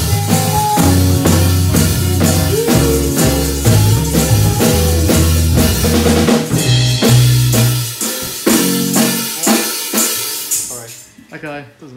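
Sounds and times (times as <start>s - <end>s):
low bass line: 0.0s - 7.8s
electric keyboard chords: 0.0s - 10.7s
band playing accented hits: 0.0s - 11.2s
drums: 0.0s - 11.6s.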